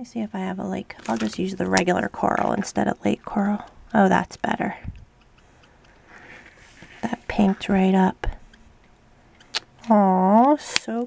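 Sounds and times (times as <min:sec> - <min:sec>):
marker nib ticking on metal: 0:00.4 - 0:06.1, 0:07.0 - 0:11.0.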